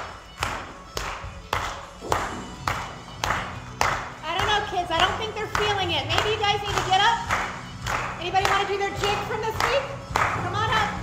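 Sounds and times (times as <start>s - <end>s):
hands clapping in time: 0.0s - 11.0s.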